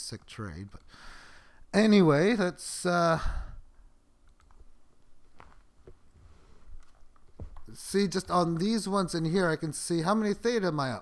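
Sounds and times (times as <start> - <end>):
faint mouse clicks: 4.2 - 4.7.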